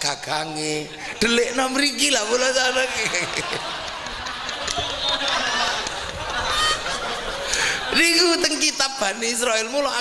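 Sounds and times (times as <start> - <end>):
man laughing into microphone: 2.6 - 8.3.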